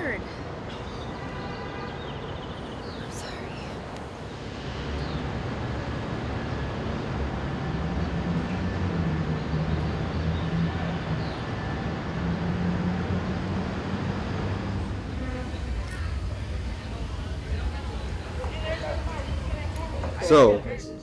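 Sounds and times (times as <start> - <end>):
city traffic noise: 0.0 - 21.0
large engine humming: 4.4 - 21.0.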